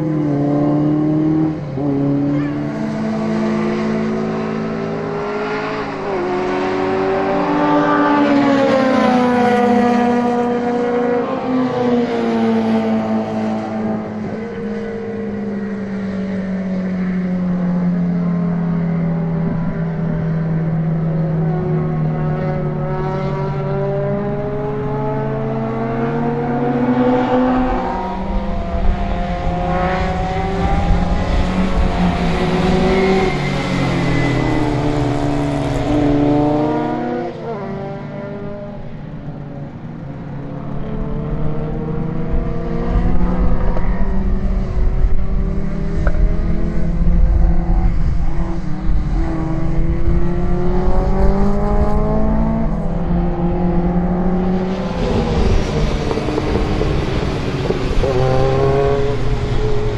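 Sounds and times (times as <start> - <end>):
racing car engines: 0.0 - 59.9.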